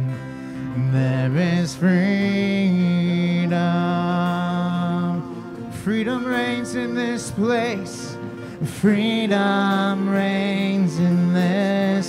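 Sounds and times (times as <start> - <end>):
acoustic guitar: 0.0 - 12.0
keyboard: 0.0 - 12.0
man singing: 0.0 - 12.0.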